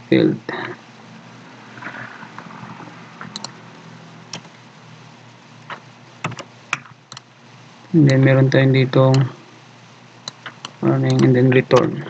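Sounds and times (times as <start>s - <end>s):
keyboard keystroke clicks: 6.3s - 7.2s.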